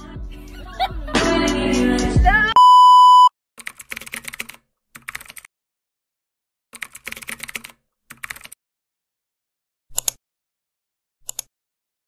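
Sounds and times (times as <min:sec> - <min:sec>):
music: 0:00.0 - 0:02.6
electronic beep: 0:02.6 - 0:03.3
keyboard typing clicks: 0:03.6 - 0:05.5, 0:06.8 - 0:08.6, 0:09.9 - 0:10.2, 0:11.2 - 0:11.5.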